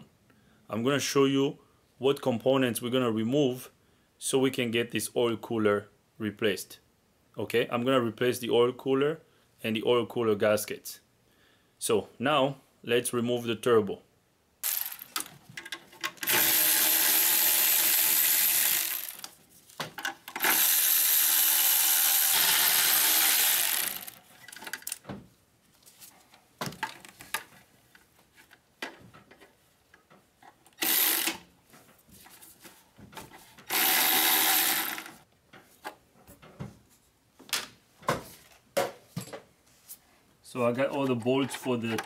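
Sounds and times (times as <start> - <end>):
power tool running: 14.6 - 15.2, 16.2 - 19.3, 20.4 - 24.2, 30.8 - 31.4, 33.7 - 35.2.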